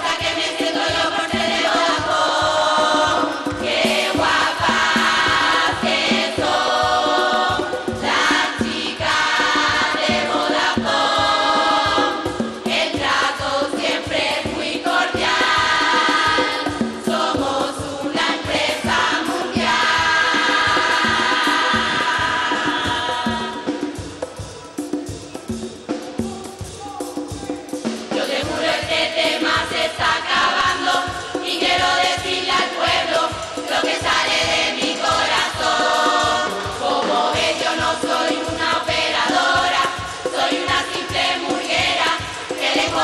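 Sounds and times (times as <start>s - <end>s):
women's chorus singing: 0.0s - 24.2s, 27.7s - 43.0s
steady percussion beat: 0.0s - 43.0s.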